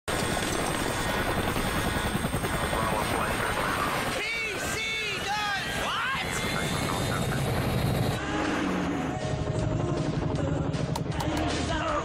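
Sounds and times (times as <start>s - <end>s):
helicopter rotor chopping: 0.1s - 11.1s.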